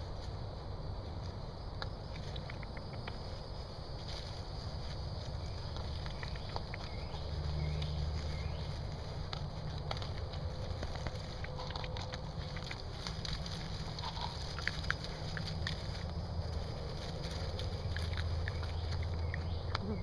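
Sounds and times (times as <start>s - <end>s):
animals rustling in dry leaves: 0.0s - 20.0s
steady low hum: 0.0s - 20.0s.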